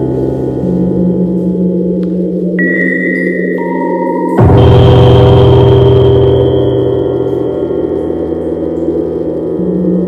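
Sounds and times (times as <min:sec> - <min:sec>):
sustained drone tones: 0:00.0 - 0:10.0
gong-like ring: 0:02.6 - 0:10.0.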